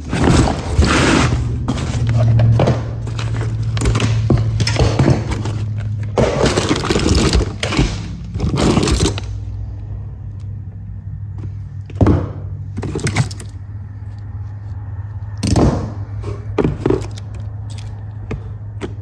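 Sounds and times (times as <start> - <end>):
plastic bags crinkling: 0.0 - 9.5
metal parts clattering and scraping: 0.0 - 9.6, 12.7 - 14.2, 15.4 - 18.2.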